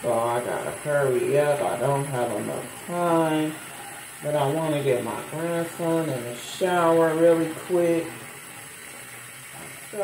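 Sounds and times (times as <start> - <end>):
faint steady hiss: 0.0 - 10.0.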